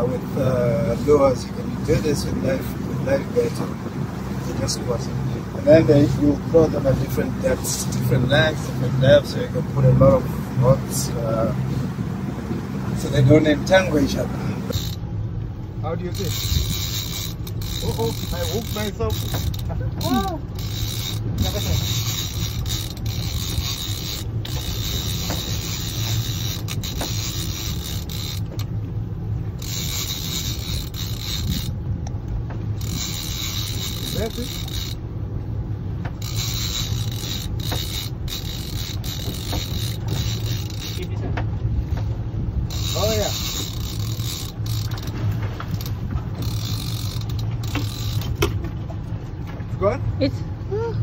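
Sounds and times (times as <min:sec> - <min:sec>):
sea noise: 0:00.0 - 0:49.6
outboard boat engines running: 0:00.0 - 0:51.0
wind: 0:00.0 - 0:51.0
fishing reel winding in line: 0:05.6 - 0:09.4, 0:13.0 - 0:15.1, 0:16.0 - 0:28.7, 0:29.6 - 0:31.8, 0:32.8 - 0:35.0, 0:36.2 - 0:41.2, 0:42.6 - 0:48.5.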